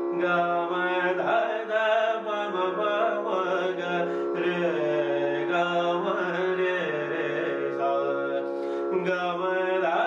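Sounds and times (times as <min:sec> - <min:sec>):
harmonium: 0:00.0 - 0:10.0
man singing classical notes: 0:00.0 - 0:10.0.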